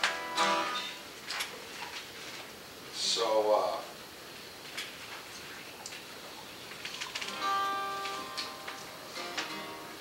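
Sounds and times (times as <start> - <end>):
acoustic guitar chord ringing: 0.0 - 1.1, 7.4 - 10.0.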